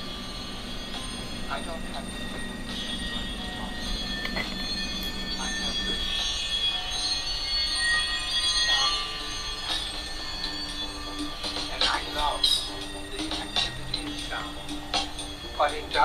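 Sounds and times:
city street traffic: 0:00.0 - 0:16.0
high drawn-out whining tones: 0:00.0 - 0:16.0.

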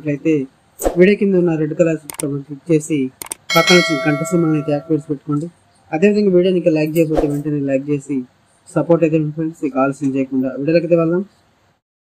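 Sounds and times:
man narrating: 0:00.0 - 0:11.3.

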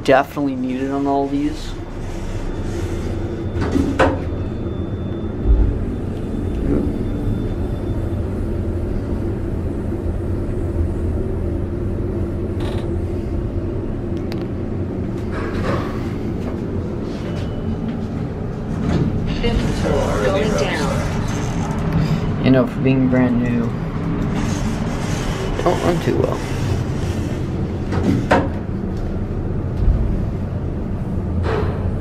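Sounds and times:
elevator hum: 0:00.0 - 0:32.0
elevator ride rumble: 0:00.0 - 0:32.0.

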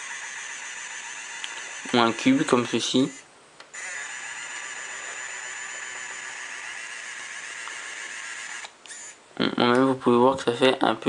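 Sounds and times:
pen motor and fan whirring: 0:00.0 - 0:09.2.

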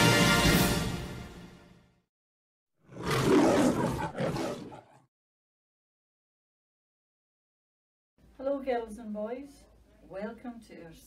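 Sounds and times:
lion roaring: 0:02.8 - 0:05.0.

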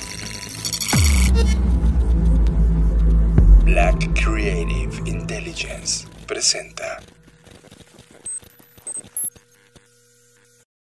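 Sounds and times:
deep electronic bass rumble: 0:00.9 - 0:06.3.

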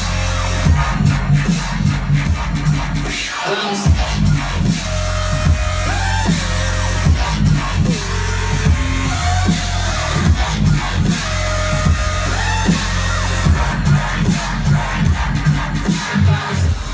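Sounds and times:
dubstep music over sound system: 0:00.0 - 0:16.9.

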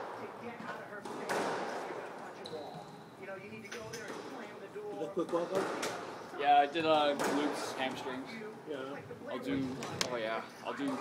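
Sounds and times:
ball bouncing off court walls: 0:07.1 - 0:07.6
squash ball hits: 0:07.1 - 0:07.6.

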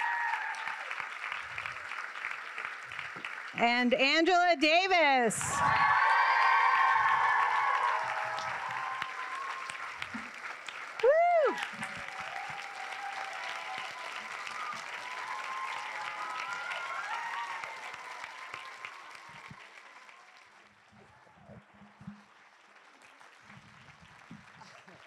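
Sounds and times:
audience applauding and cheering: 0:00.0 - 0:03.6, 0:05.4 - 0:25.0.

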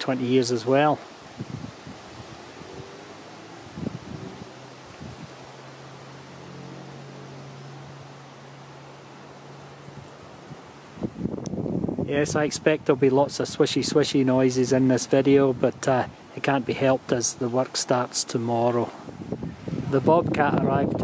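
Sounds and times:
wind on microphone: 0:01.0 - 0:05.7, 0:09.9 - 0:13.6, 0:18.8 - 0:21.0.

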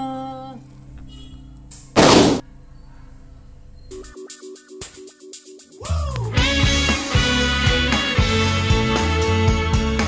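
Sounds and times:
cartoon smoke poof effect: 0:02.0 - 0:02.4.

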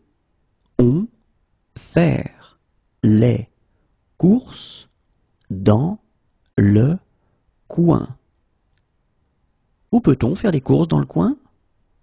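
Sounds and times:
person speaking: 0:00.7 - 0:08.3, 0:09.9 - 0:11.6.

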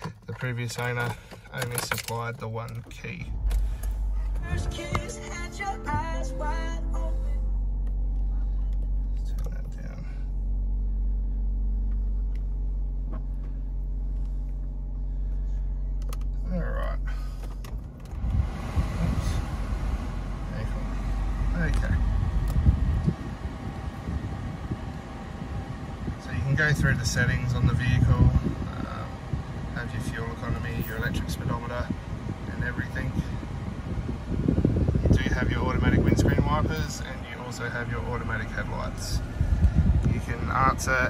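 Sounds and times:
car engine idling: 0:00.0 - 0:41.0.

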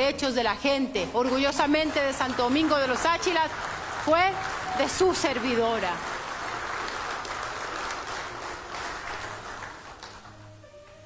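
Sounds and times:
soft background music: 0:00.0 - 0:11.0
audience applauding: 0:01.2 - 0:10.6.

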